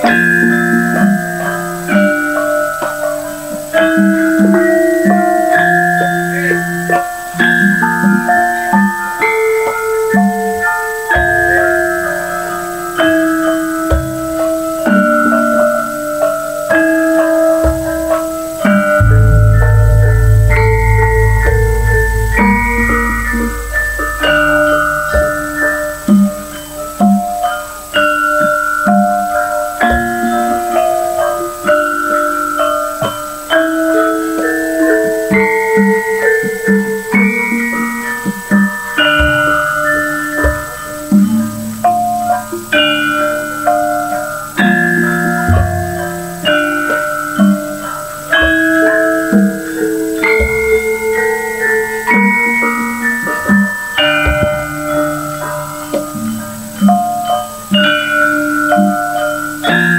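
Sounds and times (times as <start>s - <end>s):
metal bars and gongs struck melody: 0.0s - 59.9s
low drum strokes: 19.0s - 26.5s.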